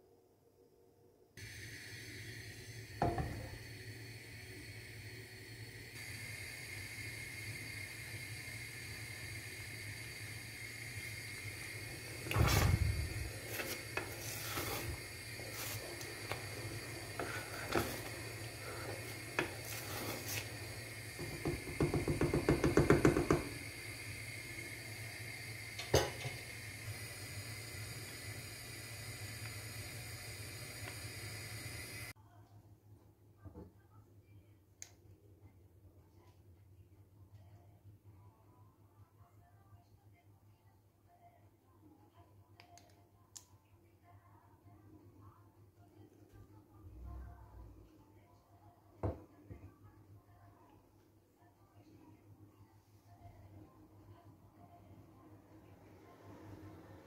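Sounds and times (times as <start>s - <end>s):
steady hum: 1.4s - 32.2s
wooden spoon scraping saucepan: 12.3s - 20.6s.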